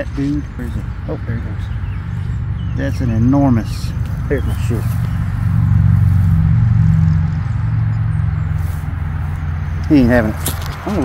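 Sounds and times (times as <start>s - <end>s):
motor droning: 0.0s - 11.0s.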